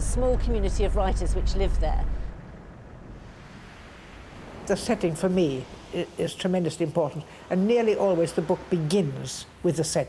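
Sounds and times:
waves washing on shingle beach: 0:03.2 - 0:09.7.

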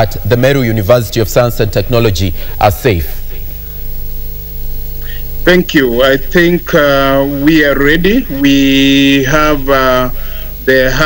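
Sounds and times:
electrical hum with hiss: 0:00.0 - 0:11.0
faint held tone: 0:03.2 - 0:11.0.

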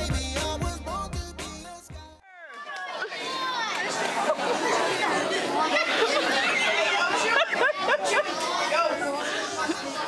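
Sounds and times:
overlapping chatter of voices: 0:02.2 - 0:10.0.

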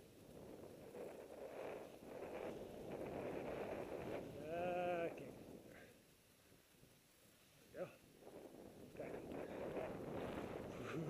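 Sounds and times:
skis scraping through snow: 0:00.3 - 0:04.4.

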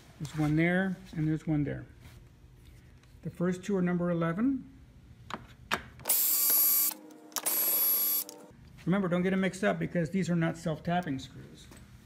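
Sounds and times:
drill driver whining: 0:06.1 - 0:08.4.

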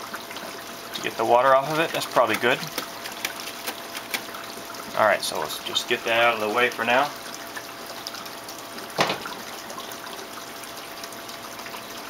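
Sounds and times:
water trickling and dripping: 0:00.0 - 0:12.0.

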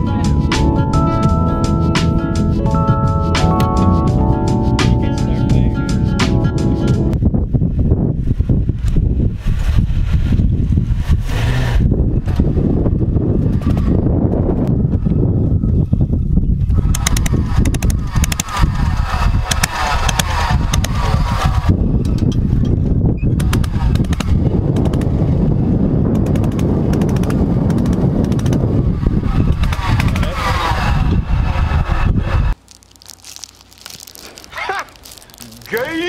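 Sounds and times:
low rumble on microphone: 0:00.0 - 0:19.5
golf cart rattling on dirt track: 0:29.3 - 0:31.0
voices: 0:34.5 - 0:36.0.

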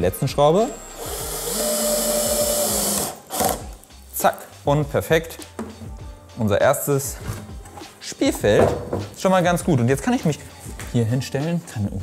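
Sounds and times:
cordless drill driving screw: 0:00.6 - 0:03.8.

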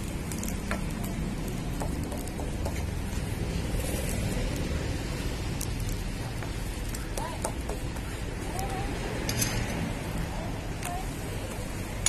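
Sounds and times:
oil frying on griddle: 0:00.0 - 0:12.0.

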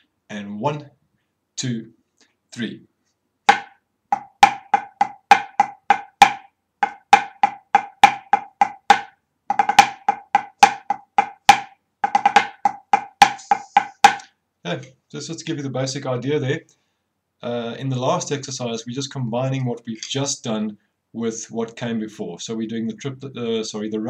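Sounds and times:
drumsticks playing ruffs: 0:03.5 - 0:14.3.

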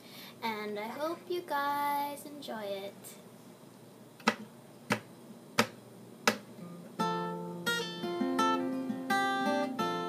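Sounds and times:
acoustic guitar strumming chords: 0:05.6 - 0:10.0.

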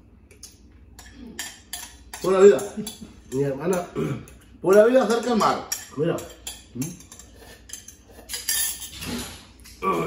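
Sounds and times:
metal spoons clinking on ceramic bowls: 0:00.3 - 0:09.8.

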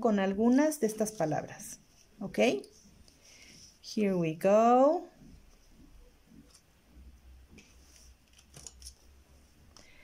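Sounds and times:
soft rustles: 0:05.1 - 0:10.0.

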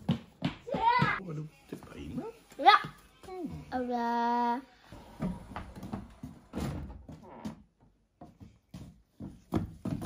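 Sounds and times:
child's footsteps on wooden deck: 0:00.0 - 0:01.2, 0:05.2 - 0:10.0.

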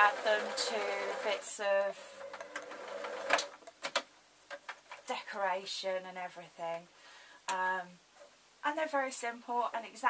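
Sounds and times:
sewing machine stitching: 0:00.0 - 0:01.4, 0:02.2 - 0:03.5.

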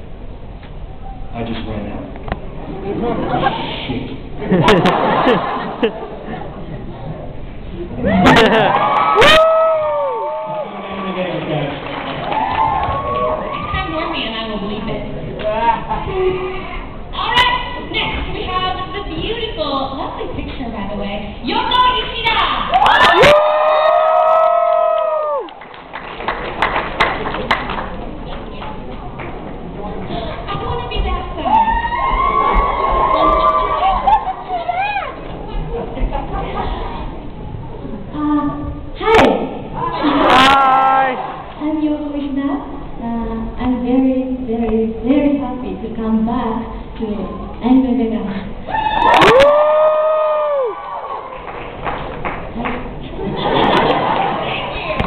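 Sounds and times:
person whooping: 0:08.0 - 0:10.6, 0:48.7 - 0:50.8
person cheering woo: 0:08.0 - 0:10.7, 0:22.7 - 0:25.5, 0:48.7 - 0:51.0.

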